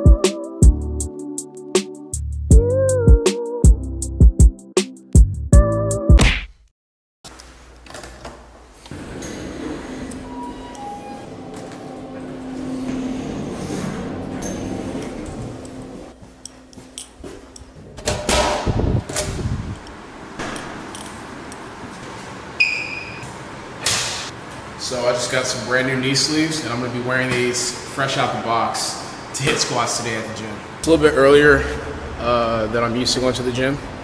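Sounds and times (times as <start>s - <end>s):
doors opening and closing: 7.8s - 24.7s
steady low hum: 11.8s - 21.9s.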